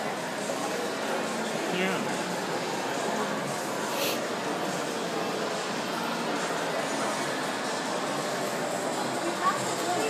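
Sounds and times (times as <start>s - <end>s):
even wash of mall noise: 0.0s - 10.0s
murmur of distant voices: 0.0s - 10.0s.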